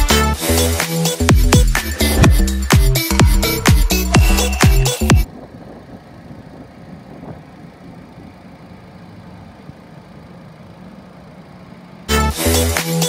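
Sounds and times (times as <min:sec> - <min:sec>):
car engine idling: 0:01.2 - 0:12.8.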